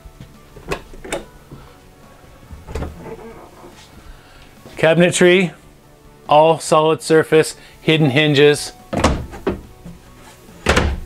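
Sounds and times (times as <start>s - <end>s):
quiet background music: 0.0s - 11.0s
wooden cabinet doors clacking: 2.6s - 3.1s, 8.9s - 9.7s, 10.6s - 11.0s.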